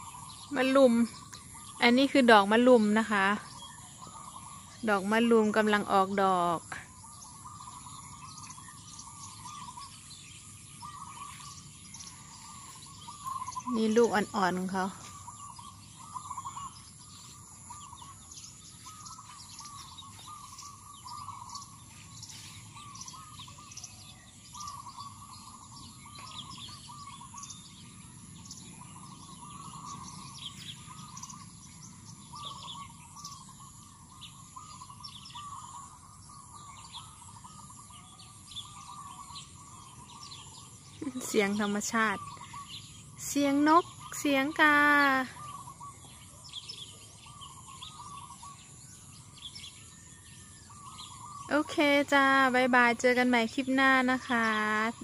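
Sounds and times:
birds warbling: 0.0s - 55.0s
high bird chirps: 0.0s - 55.0s.

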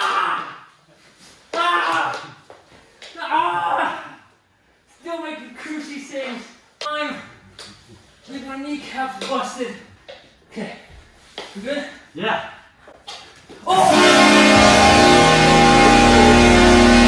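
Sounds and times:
loud music: 13.7s - 17.0s.

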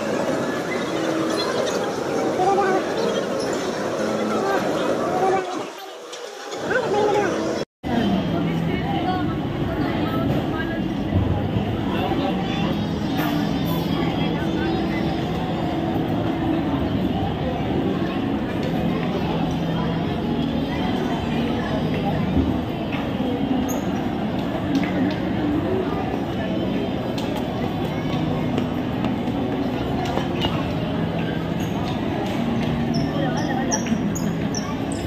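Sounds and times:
chatter of many voices: 0.0s - 35.0s
rumbling din of ice rink: 0.0s - 35.0s.

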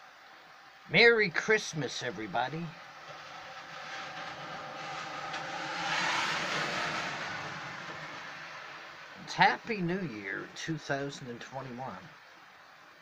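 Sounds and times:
tyre hiss on wet road: 2.8s - 9.2s.

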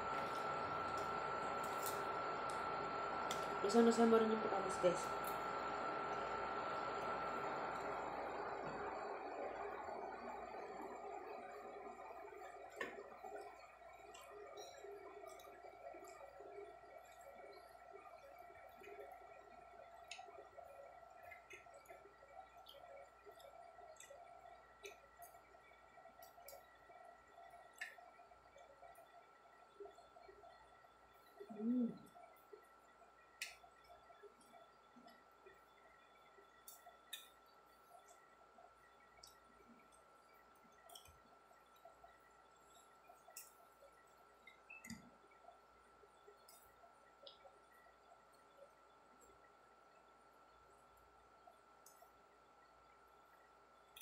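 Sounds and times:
person humming mm: 31.5s - 32.1s.

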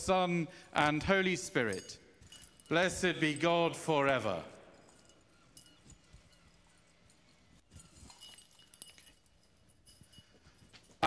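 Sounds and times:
faint knocks and shuffles: 4.7s - 11.0s.

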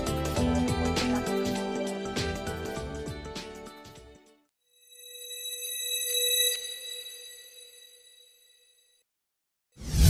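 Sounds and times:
bell-like chime: 4.7s - 9.0s.

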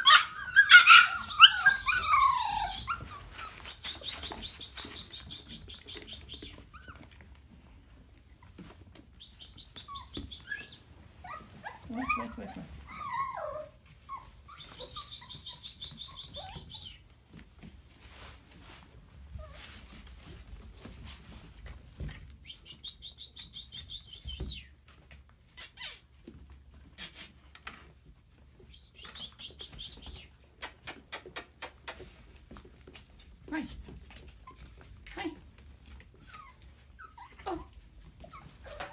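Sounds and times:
puppy yelps: 0.0s - 3.8s, 9.9s - 16.8s, 36.2s - 38.9s
puppies whimpering and squeaking: 0.0s - 17.2s, 19.3s - 20.4s, 21.6s - 27.4s, 33.9s - 38.9s.

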